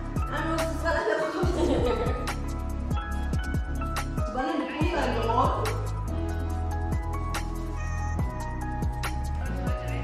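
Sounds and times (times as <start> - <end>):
electronic beat: 0.0 - 10.0.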